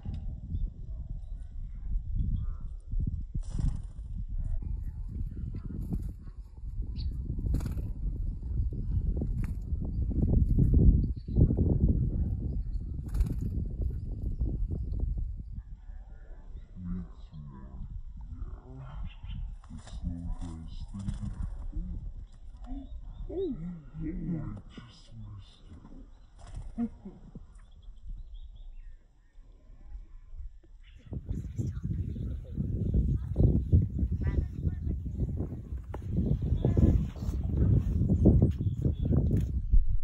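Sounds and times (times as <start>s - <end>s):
wind rumbling on microphone: 0.0s - 40.0s
bird wingbeats: 3.3s - 4.1s, 7.0s - 8.5s, 9.2s - 9.7s, 13.0s - 14.3s, 19.0s - 24.8s, 25.6s - 27.8s
low muffled human voice: 4.3s - 9.2s, 11.2s - 13.1s, 15.4s - 27.7s, 29.2s - 39.9s.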